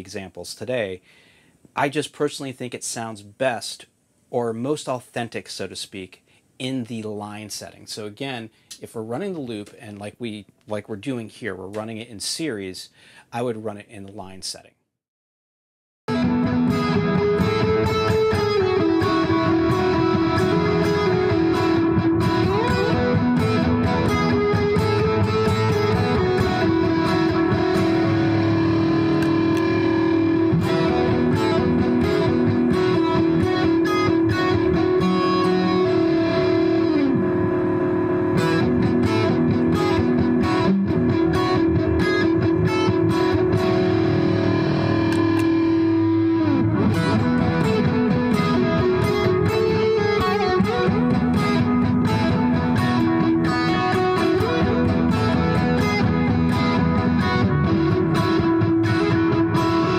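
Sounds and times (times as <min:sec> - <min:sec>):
electric guitar with delay: 0:16.1 - 0:59.9.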